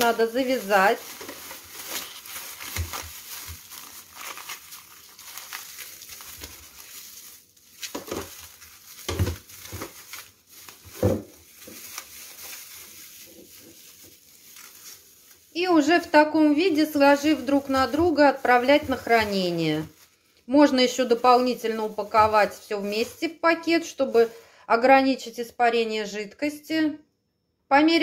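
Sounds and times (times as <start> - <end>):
plastic bag crinkling: 0.0 - 24.6.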